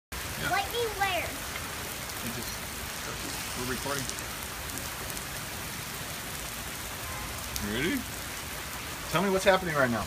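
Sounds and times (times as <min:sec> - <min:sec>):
heavy rain on pavement: 0:00.1 - 0:10.0.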